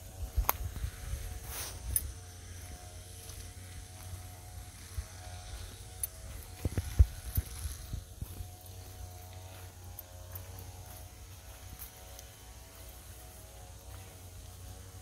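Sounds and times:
footsteps on leafy path: 0.0 - 15.0
microphone handling rumble: 6.4 - 8.5.

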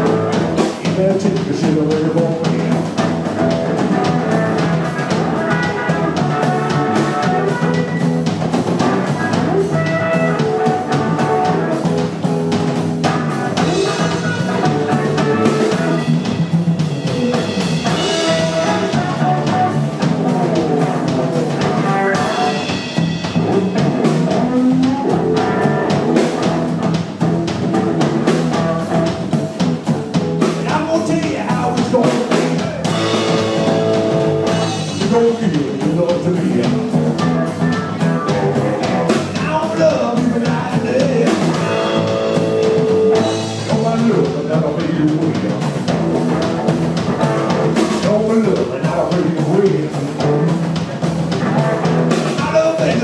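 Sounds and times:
rock and roll band playing: 0.0 - 53.0.

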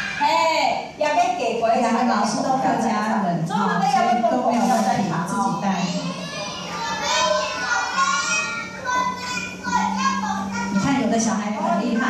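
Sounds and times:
children talking over loudspeakers: 0.0 - 1.4, 2.0 - 12.0.

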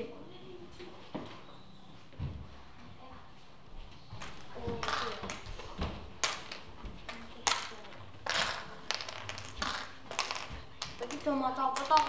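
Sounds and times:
plastic pieces clattering in a tray: 6.2 - 12.0.

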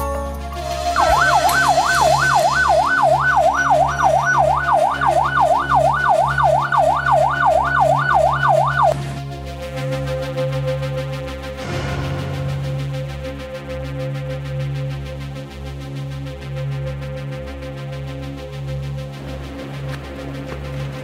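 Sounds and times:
background music: 0.0 - 21.0
siren sweeping up and down: 0.4 - 9.0.

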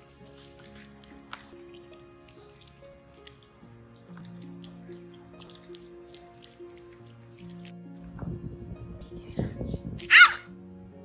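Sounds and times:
background music: 0.0 - 11.0
dog yelping bark: 10.1 - 10.5.

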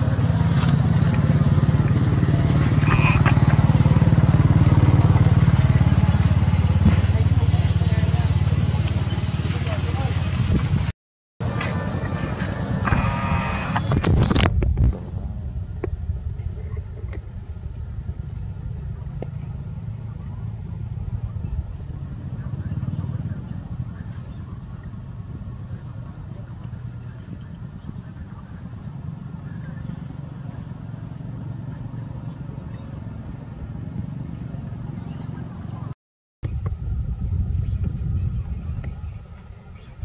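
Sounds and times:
low outdoor rumble: 0.0 - 40.0.

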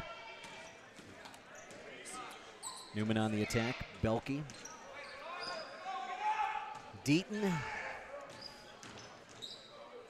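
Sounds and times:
murmur of crowd: 0.0 - 10.0
sneaker squeaks: 1.6 - 3.0, 4.5 - 5.8, 8.3 - 10.0.

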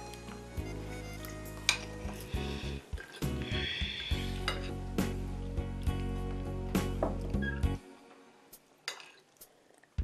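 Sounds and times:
background music: 0.0 - 9.6.

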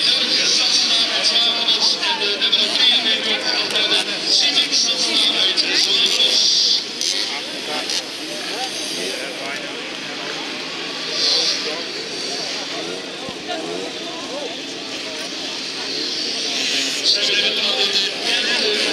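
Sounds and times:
moped engines revving: 0.0 - 18.9
people talking: 0.0 - 18.9.

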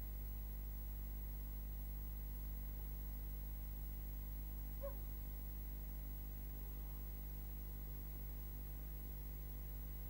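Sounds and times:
low electrical hum and hiss: 0.0 - 10.0.

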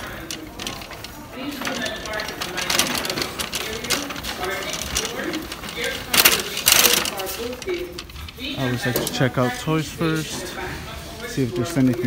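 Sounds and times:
shopping cart rattling: 0.0 - 12.0.

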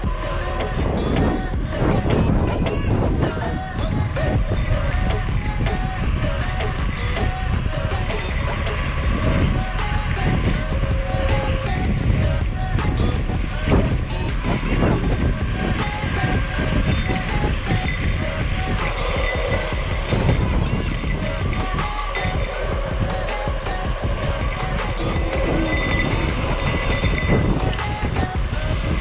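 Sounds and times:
music playing: 0.0 - 29.0
wind buffeting microphone: 0.0 - 29.0.

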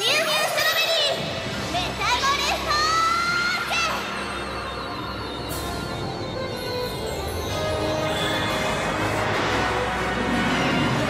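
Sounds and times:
shimmering soundtrack: 0.0 - 11.0.

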